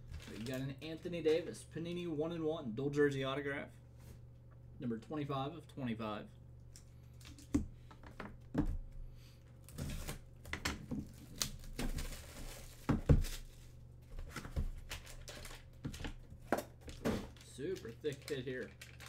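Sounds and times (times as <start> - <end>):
plastic and foil tearing: 0.0 - 0.6, 11.1 - 13.7, 14.7 - 15.7, 16.9 - 19.0.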